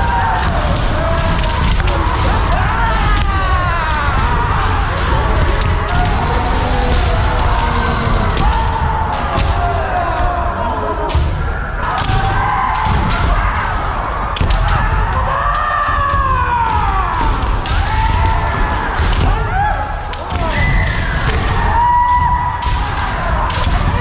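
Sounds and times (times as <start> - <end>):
bamboo swords cracking together: 0.0 - 9.9, 14.3 - 24.0.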